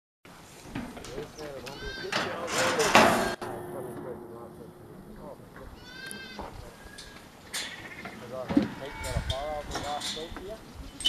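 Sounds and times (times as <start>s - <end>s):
faint outdoor background: 0.3s - 11.0s
man speaking: 1.0s - 6.9s, 8.2s - 10.7s.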